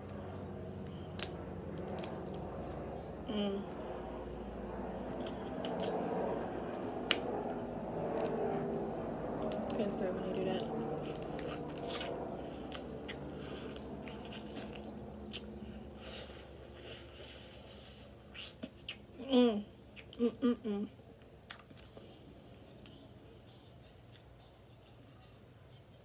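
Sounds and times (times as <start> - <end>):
wet sucking and chewing: 11.0 - 19.1.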